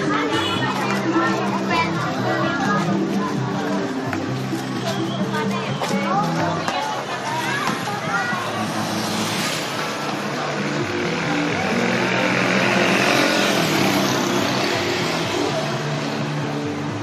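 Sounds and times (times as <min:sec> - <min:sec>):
crowd voices: 0:00.0 - 0:17.0
music: 0:00.0 - 0:17.0
motorcycle engine passing: 0:08.3 - 0:16.0.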